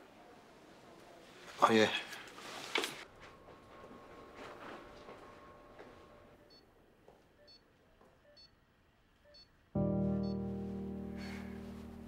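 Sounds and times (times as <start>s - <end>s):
patient monitor beeps: 7.4s - 7.6s, 8.3s - 8.5s.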